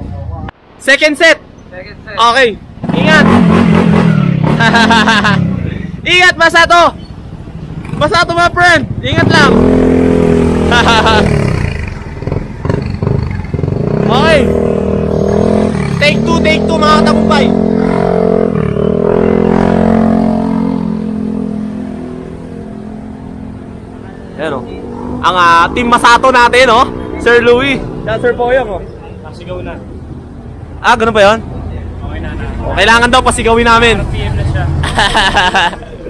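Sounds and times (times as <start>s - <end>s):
man talking: 16.0s - 17.6s, 24.0s - 30.0s, 30.8s - 34.8s.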